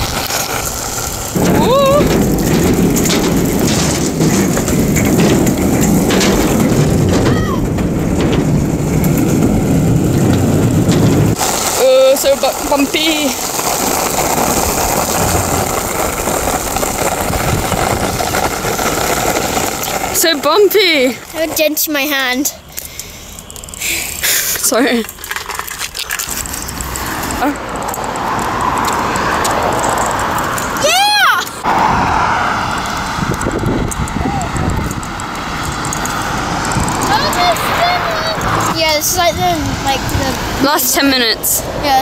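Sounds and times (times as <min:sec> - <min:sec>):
road traffic passing: 0:00.0 - 0:42.0
skateboard wheels rolling on gravel: 0:00.0 - 0:42.0
girl squealing: 0:01.5 - 0:02.1, 0:30.8 - 0:31.6.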